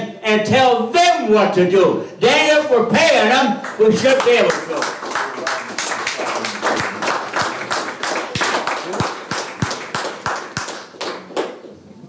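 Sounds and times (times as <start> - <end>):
audience applauding: 3.6 - 11.8.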